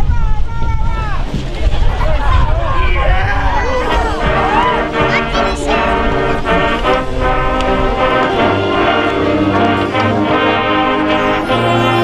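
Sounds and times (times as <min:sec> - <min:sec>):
marching band brass chords: 0:01.2 - 0:12.0.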